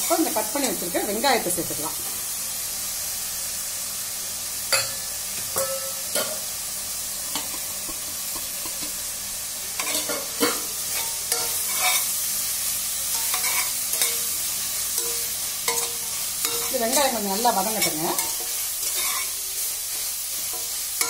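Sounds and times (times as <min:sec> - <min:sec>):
onions sizzling in oil: 0:00.0 - 0:21.0
metal spatula scraping pot: 0:09.8 - 0:12.1, 0:13.1 - 0:14.2, 0:15.0 - 0:19.4.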